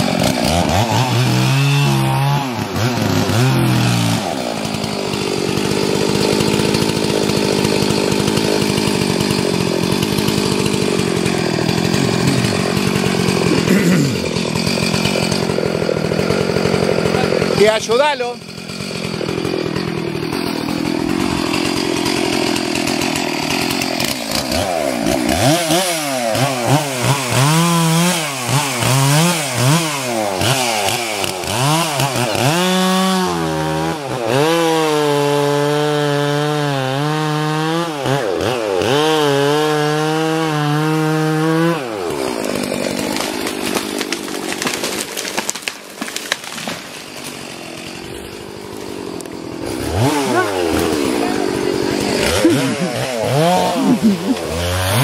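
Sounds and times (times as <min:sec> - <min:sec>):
chainsaw revving: 0:00.0 - 0:55.0.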